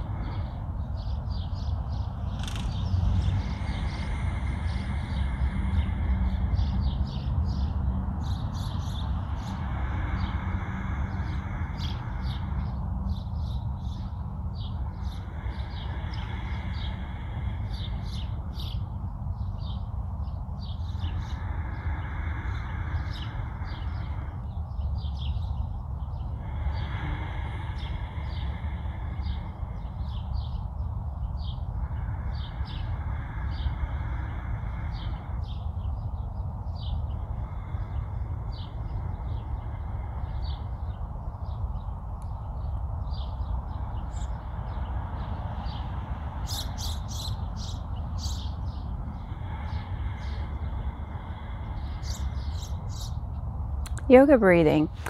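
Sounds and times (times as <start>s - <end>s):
slow deep breaths: 0.0s - 54.2s
low wind rumble on microphone: 0.0s - 55.0s.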